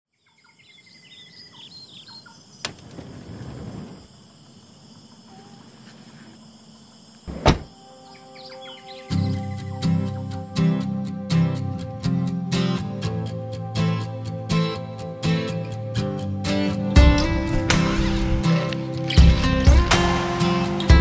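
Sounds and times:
birds chirping: 0.1 - 3.2, 3.9 - 13.5
steady hiss: 2.4 - 16.7
rustling noise: 2.7 - 4.2
heavy thud: 7.3 - 7.8
music: 7.6 - 21.0.

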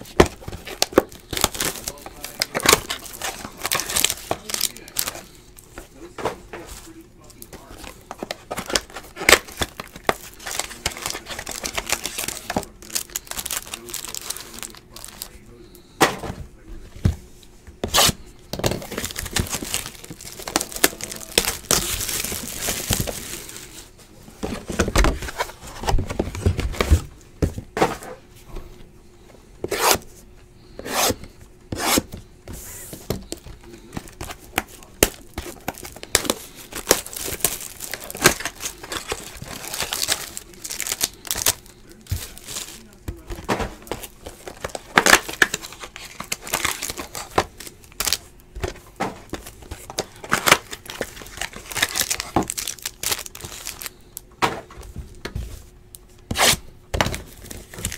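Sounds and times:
foil wrappers crinkling and tearing: 0.0 - 15.8, 17.8 - 26.9, 33.1 - 54.2, 56.3 - 57.9.

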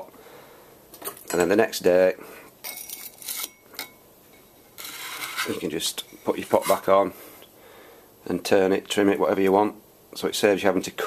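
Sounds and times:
faint metallic ring: 2.6 - 6.9
tool scraping metal wheel head: 4.8 - 6.9.

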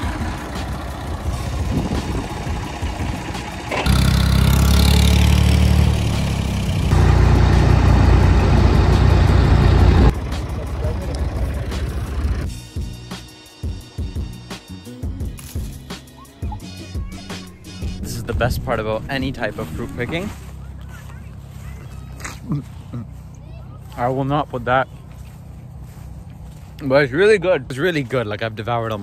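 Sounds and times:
wagon rumbling on dirt track: 0.0 - 12.5.

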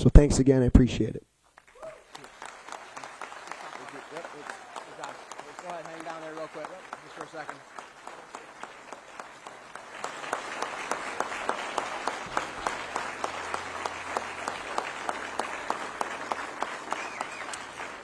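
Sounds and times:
audience applauding: 1.6 - 18.0.

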